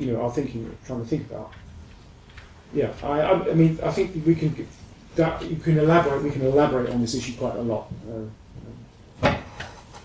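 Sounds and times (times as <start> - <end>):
people speaking: 0.0 - 1.6, 2.7 - 8.9.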